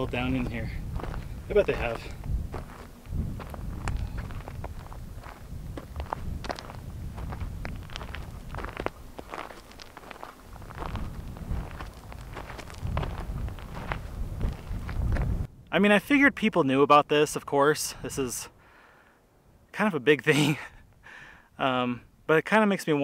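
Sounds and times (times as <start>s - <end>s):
footsteps on rocky ground: 0.0s - 15.5s
wind rumble on microphone: 0.0s - 15.7s.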